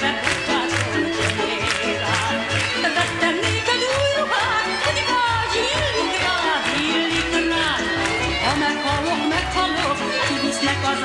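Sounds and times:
violin: 0:00.0 - 0:11.0
woman singing: 0:00.0 - 0:11.0.

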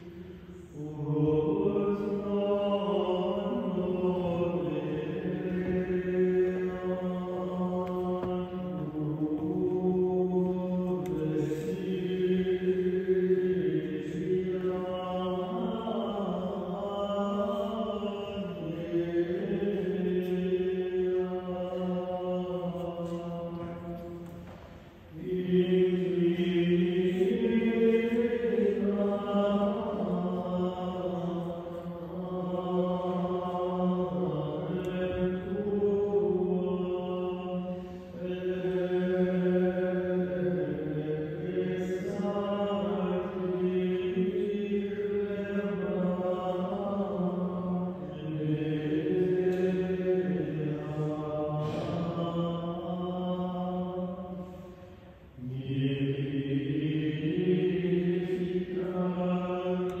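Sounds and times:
monks chanting: 0:00.0 - 1:00.0.

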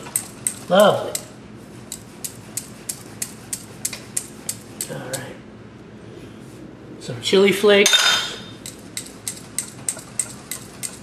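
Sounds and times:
whisk clicking against metal bowl: 0:08.6 - 0:11.0.

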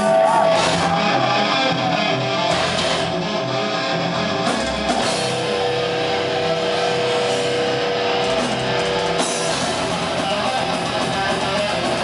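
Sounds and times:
distorted guitar sustained note: 0:00.0 - 0:12.0
metal band playing live: 0:00.0 - 0:12.0.

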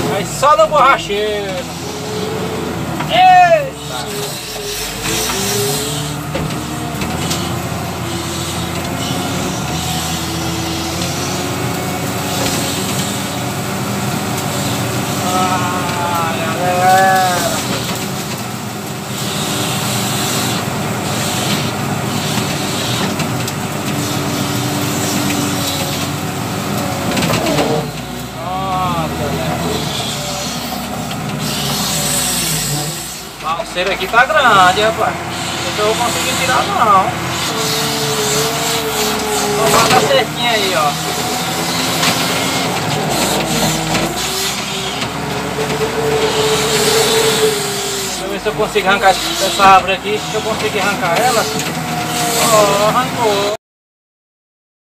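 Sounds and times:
diesel engine under load: 0:00.0 - 0:53.6.

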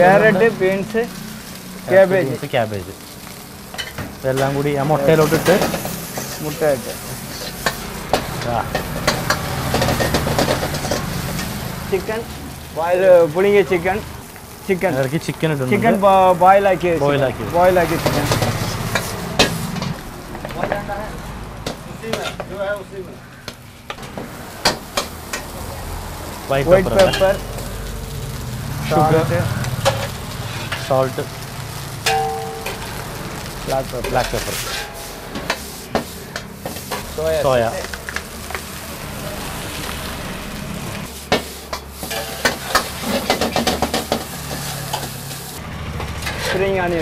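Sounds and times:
steady sizzling: 0:00.0 - 0:47.0
metal ladle clanking on wok: 0:32.0 - 0:32.9.

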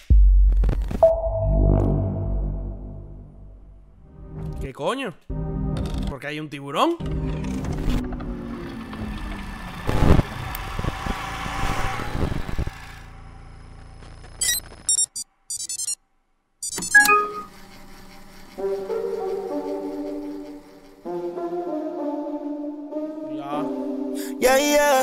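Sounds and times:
low hum: 0:01.0 - 0:04.6
song opening chords: 0:01.0 - 0:04.6, 0:21.1 - 0:25.0
short electronic beeps: 0:14.4 - 0:16.0, 0:16.6 - 0:17.5.

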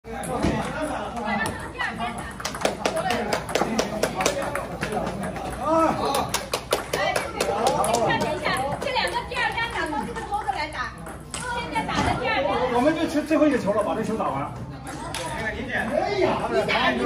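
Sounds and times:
voices chattering: 0:00.1 - 0:17.0
table tennis ball clicking: 0:02.3 - 0:05.6, 0:14.9 - 0:16.0.

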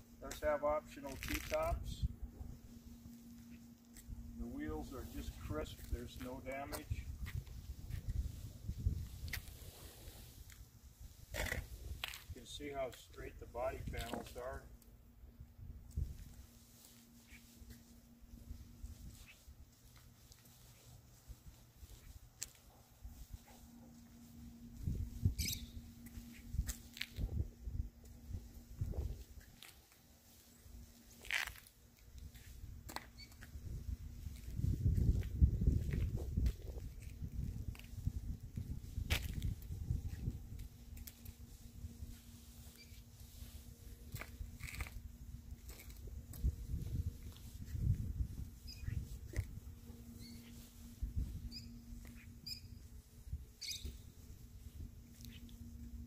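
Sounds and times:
faint steady hum: 0:00.0 - 0:56.0
footsteps on asphalt: 0:00.3 - 0:01.8, 0:02.6 - 0:14.6, 0:15.8 - 0:56.0
small birds chirping: 0:25.4 - 0:25.9, 0:48.7 - 0:49.0, 0:50.2 - 0:50.7, 0:51.5 - 0:52.9, 0:53.6 - 0:54.1, 0:55.2 - 0:55.6.

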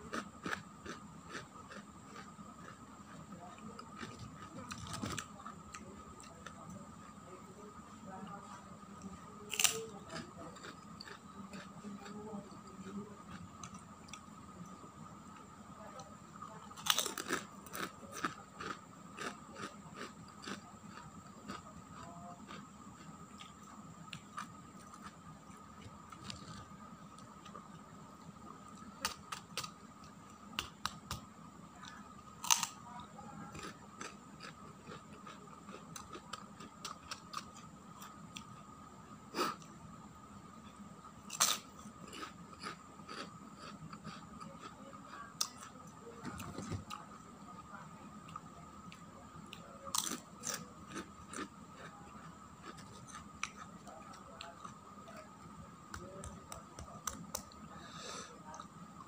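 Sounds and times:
crackers crunching when chewed: 0:00.0 - 0:07.2, 0:09.0 - 0:14.8, 0:16.4 - 0:27.9, 0:28.6 - 0:32.8, 0:33.5 - 0:38.7, 0:41.2 - 0:47.2, 0:48.1 - 0:59.0.

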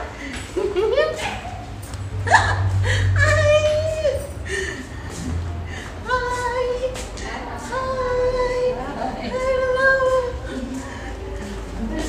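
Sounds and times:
low hum: 0:00.0 - 0:07.0
woman laughing: 0:00.4 - 0:04.9.

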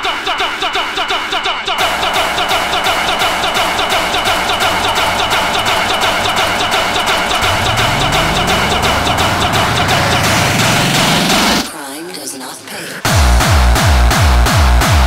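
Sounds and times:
repeating synth stabs: 0:01.8 - 0:11.7
rising synth sweep: 0:01.8 - 0:11.7
fast electronic techno beat: 0:01.8 - 0:11.8, 0:13.0 - 0:15.0.

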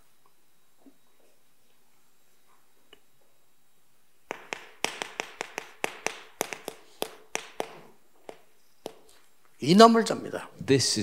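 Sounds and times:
chalk tapping on blackboard: 0:04.3 - 0:09.3.

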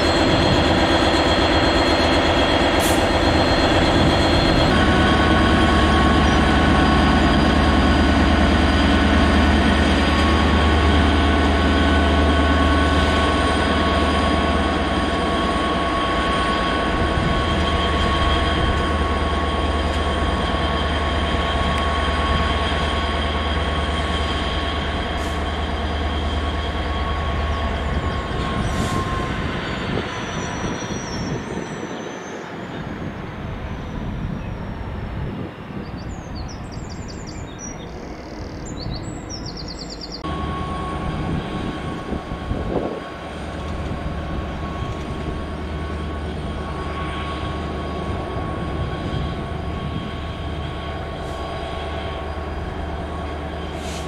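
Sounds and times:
diesel locomotive engine drone: 0:00.0 - 0:54.0.

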